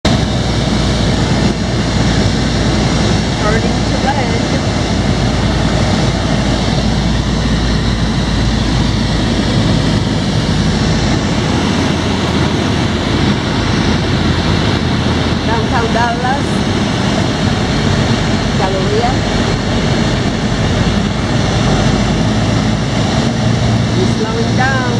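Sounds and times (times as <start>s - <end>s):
aircraft engine and propeller drone: 0.0s - 24.9s
wind noise: 0.0s - 24.9s.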